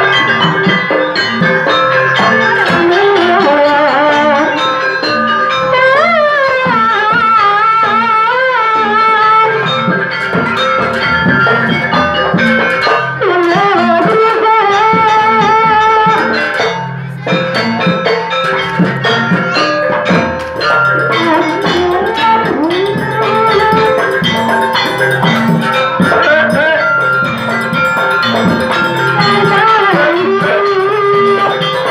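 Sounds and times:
drum strokes: 0.0s - 4.8s, 5.7s - 31.9s
metallic percussion: 0.0s - 31.9s
wavering sliding melody: 0.0s - 31.9s.

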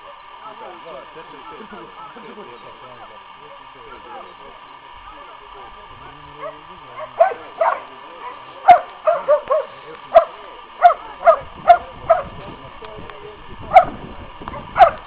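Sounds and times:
dog barking high-pitched: 6.0s - 12.3s, 13.7s - 15.0s.

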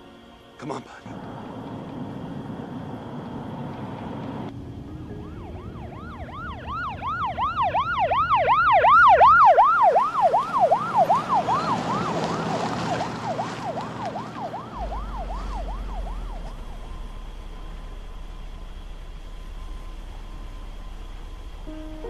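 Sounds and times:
ambulance siren yelping: 5.0s - 17.8s.

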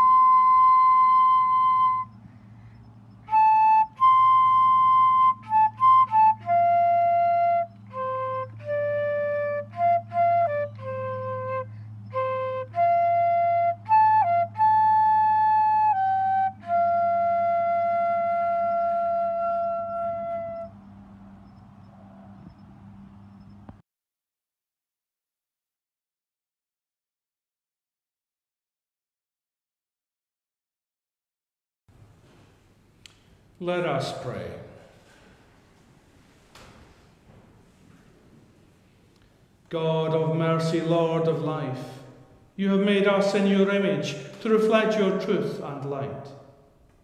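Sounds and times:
flute playing slow melody: 0.0s - 2.2s, 3.2s - 21.4s
low electrical hum: 0.0s - 23.8s, 31.9s - 47.0s.

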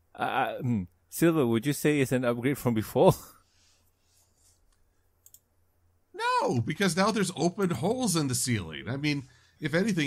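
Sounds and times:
faint quick clicks: 4.7s - 5.5s.

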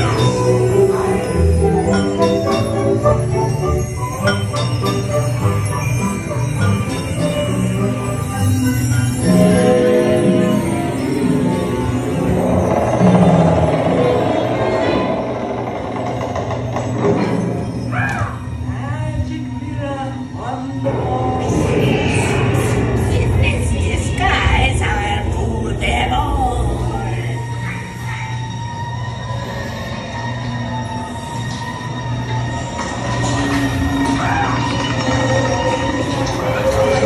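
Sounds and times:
ride soundtrack music: 0.0s - 15.6s, 24.4s - 37.0s
ride vehicle rolling on track: 0.0s - 17.9s, 30.9s - 37.0s.

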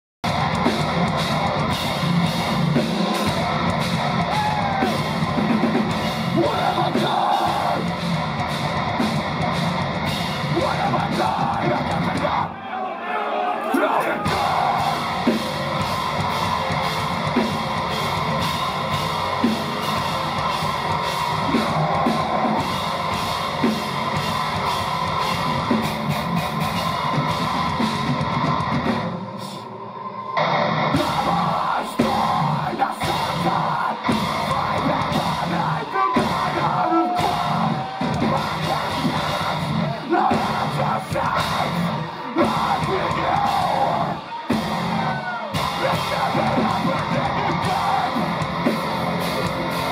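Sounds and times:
distorted electric guitars: 0.2s - 12.5s, 14.2s - 49.9s
drum kit: 0.2s - 12.5s, 14.2s - 29.6s, 30.4s - 49.9s
screamed vocals: 4.2s - 5.2s, 6.3s - 7.9s, 10.4s - 15.7s, 21.1s - 23.0s, 29.4s - 48.9s.

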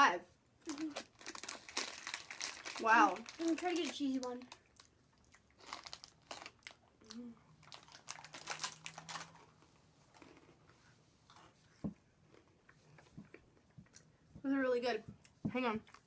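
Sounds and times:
snack bag crinkling: 0.7s - 10.5s
crunchy snacks being chewed: 0.7s - 10.7s.

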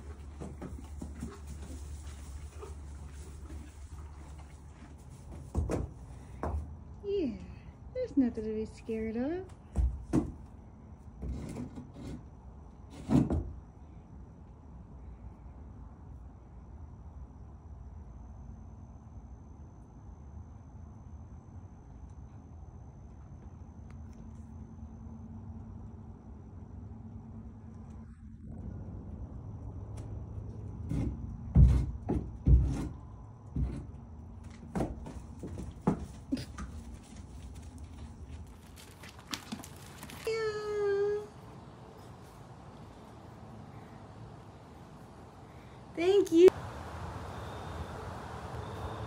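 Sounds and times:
horse hooves on wood: 0.0s - 6.9s, 9.4s - 10.5s, 30.8s - 40.3s.

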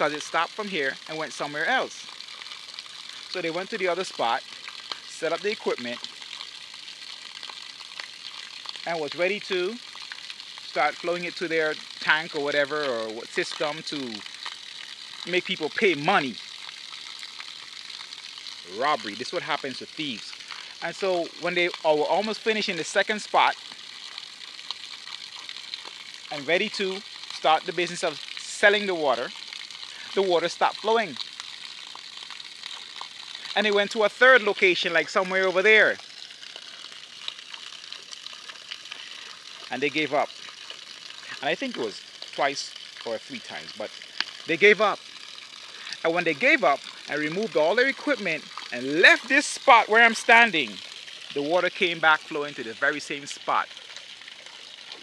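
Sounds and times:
spring water running: 0.0s - 55.0s.

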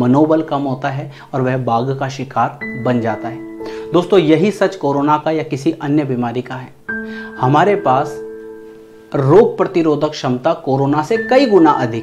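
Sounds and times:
man speaking: 0.0s - 6.8s, 7.4s - 8.2s, 9.1s - 12.0s
soft background music: 0.0s - 12.0s
bell-like chime: 6.9s - 9.1s.

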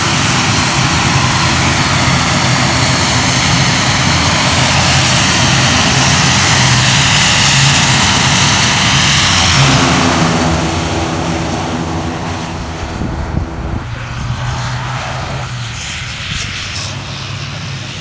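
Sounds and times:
turboprop engines droning: 0.0s - 18.0s.

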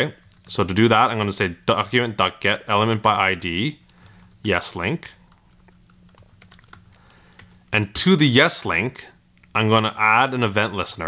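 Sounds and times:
computer keyboard keystrokes: 5.3s - 7.7s.

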